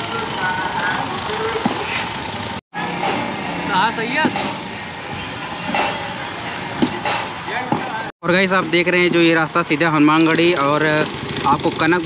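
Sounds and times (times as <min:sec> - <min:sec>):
traffic: 0:00.0 - 0:12.0
voices calling: 0:00.0 - 0:12.0
chatter of many people: 0:02.7 - 0:12.0
sharp knocks: 0:03.0 - 0:03.3, 0:04.2 - 0:04.6, 0:05.7 - 0:06.0, 0:06.8 - 0:07.9.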